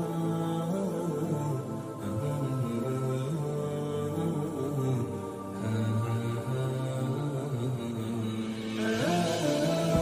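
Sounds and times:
low voice chanting: 0.0 - 10.0.

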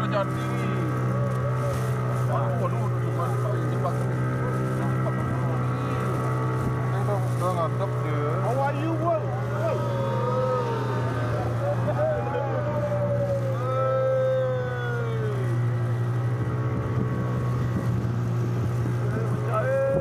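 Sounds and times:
boat engine droning: 0.0 - 20.0
people shouting: 9.3 - 15.7.

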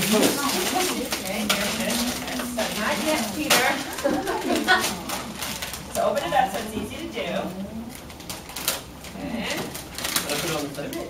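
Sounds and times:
people talking: 0.0 - 5.3, 5.9 - 7.9
plastic bag crinkling: 0.0 - 11.0
popcorn rustling: 0.0 - 11.0
people laughing: 3.8 - 5.2.

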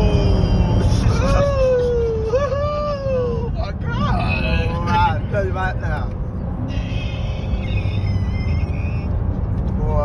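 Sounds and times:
car engine and tyre rumble: 0.0 - 10.0.

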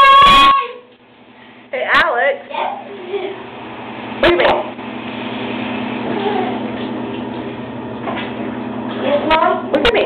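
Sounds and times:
shower water running: 2.5 - 10.0.

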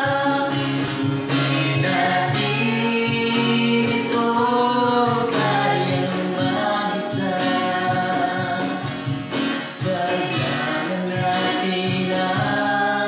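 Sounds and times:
acoustic guitar accompaniment: 0.0 - 13.0
man and woman singing together: 0.0 - 13.0.

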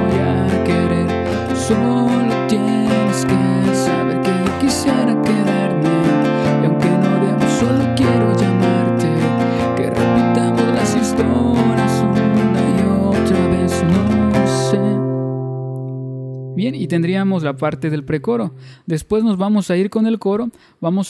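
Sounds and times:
man singing: 0.0 - 15.2
classical guitar strumming: 0.0 - 18.8.

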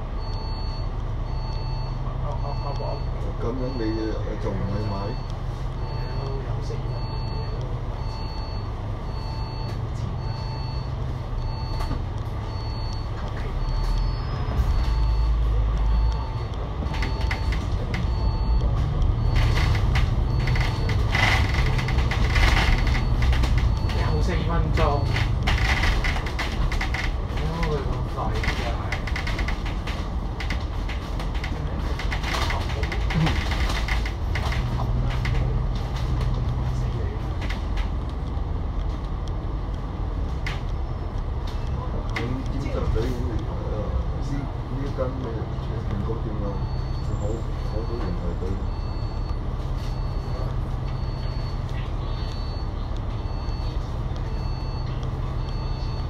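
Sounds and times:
bus engine: 0.0 - 56.0
road noise: 0.0 - 56.0
repeating beep: 0.2 - 21.8, 46.4 - 56.0.

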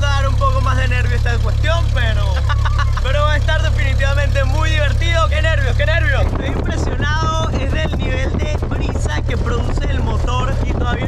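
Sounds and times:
propeller plane engine running: 0.0 - 11.0
man crying out: 2.2 - 3.4
wind buffeting microphone: 3.9 - 11.0.

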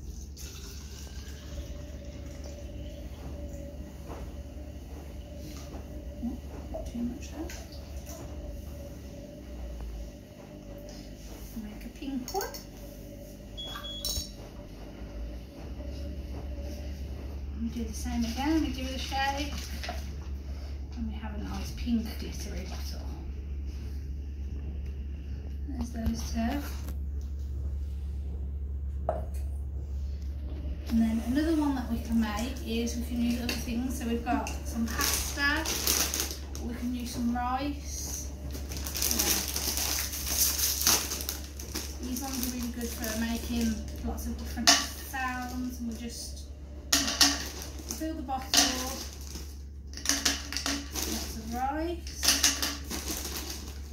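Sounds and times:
low steady hum: 0.0 - 53.9
plastic pasta packet crinkling: 34.9 - 36.5, 38.5 - 44.0, 48.7 - 51.5, 52.2 - 53.9.

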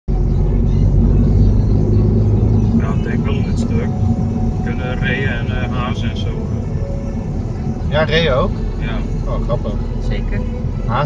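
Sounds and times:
car engine and tyre rumble: 0.1 - 11.0.

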